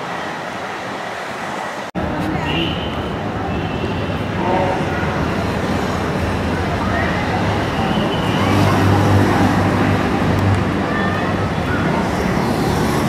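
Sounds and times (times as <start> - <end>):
faint voices: 2.0 - 13.0
passing vehicle engines: 4.2 - 13.0.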